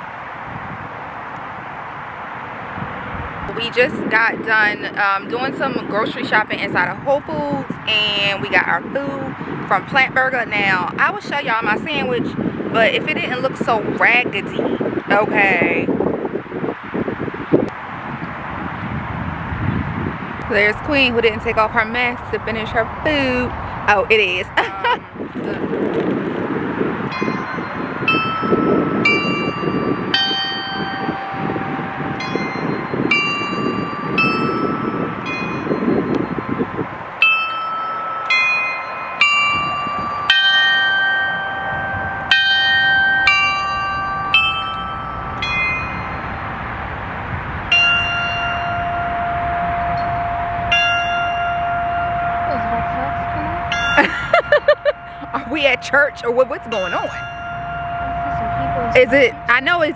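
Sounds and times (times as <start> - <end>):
bells chiming a tune: 27.1 - 46.6, 47.7 - 59.9.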